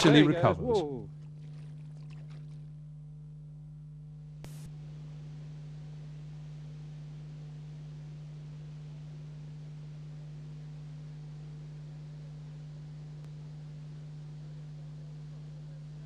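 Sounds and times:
steady electrical hum: 0.0s - 16.0s.

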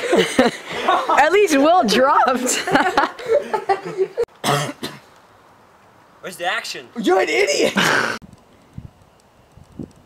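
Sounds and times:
faint background noise: 0.0s - 10.0s
person coughing: 4.4s - 5.0s, 7.8s - 8.2s.

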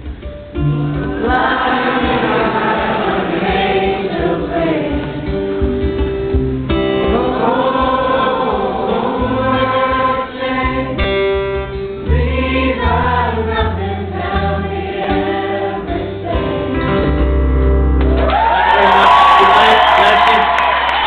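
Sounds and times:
guitar accompaniment: 0.0s - 21.0s
crowd singing in chorus: 0.8s - 5.8s, 6.8s - 17.3s.

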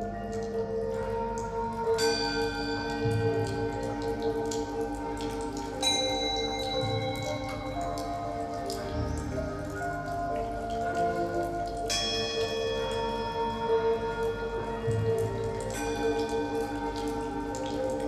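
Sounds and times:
faint clicks and drips: 0.0s - 18.0s.

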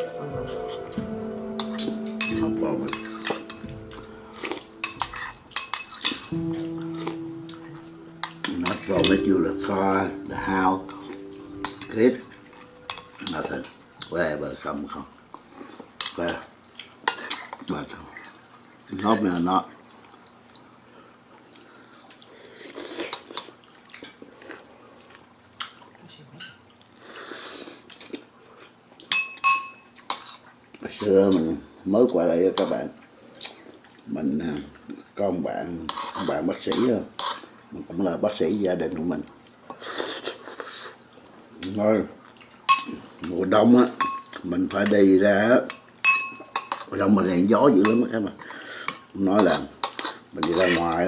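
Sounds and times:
cutlery clinking on ceramic: 1.6s - 7.6s, 8.2s - 9.8s, 10.8s - 13.7s, 29.1s - 30.4s, 32.6s - 32.8s, 35.9s - 37.5s, 42.7s - 43.0s, 44.0s - 45.0s, 45.7s - 47.0s, 47.8s - 48.1s, 48.9s - 51.0s.

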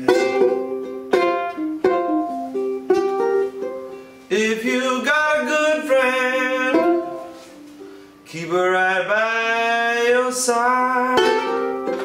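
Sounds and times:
ukulele plucked notes: 0.0s - 8.0s, 10.7s - 12.0s
ukulele chords ringing: 0.0s - 8.2s, 10.6s - 12.0s.

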